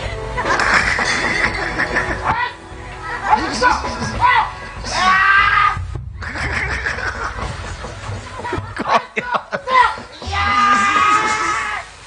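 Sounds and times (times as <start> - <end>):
people shouting: 3.2 - 5.8, 9.7 - 12.0
high-pitched scream: 10.2 - 11.9.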